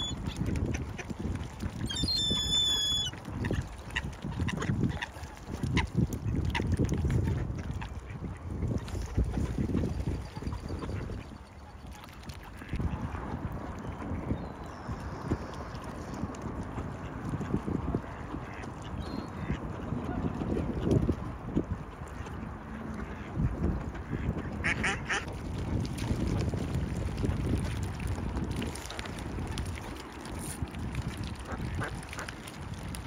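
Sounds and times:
ducks quacking: 18.1 - 20.4, 22.2 - 25.3.

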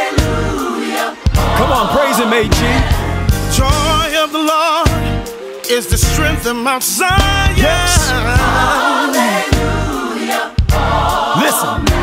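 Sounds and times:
bass accompaniment: 0.0 - 4.2, 4.9 - 8.9, 9.5 - 12.0
choir singing: 0.0 - 12.0.

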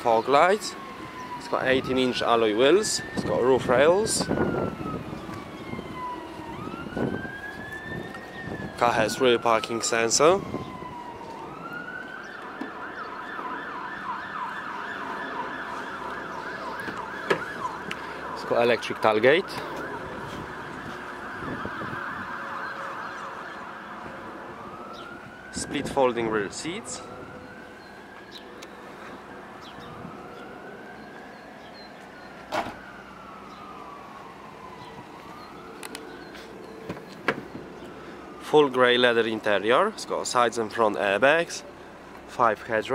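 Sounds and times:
warbling emergency siren: 0.0 - 42.2.

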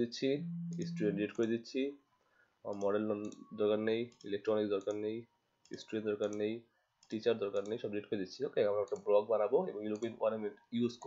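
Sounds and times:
person speaking: 0.0 - 1.5
computer mouse clicks: 5.6 - 6.4, 7.0 - 7.8, 9.9 - 10.2.

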